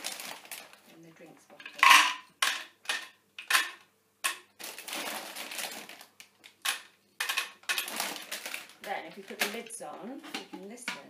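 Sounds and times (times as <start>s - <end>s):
dry pasta rattling in plastic bottle: 0.0s - 0.8s, 4.6s - 10.8s.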